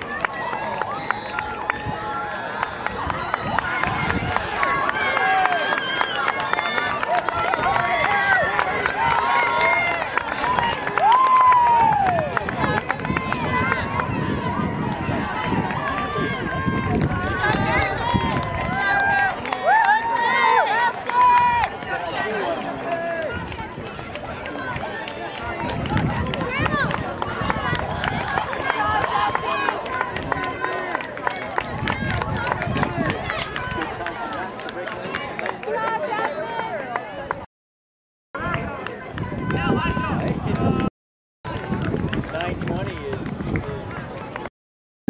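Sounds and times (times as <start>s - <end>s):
spectators shouting and cheering: 0.0s - 37.5s, 38.4s - 40.9s
runners' footsteps on track: 41.5s - 44.5s.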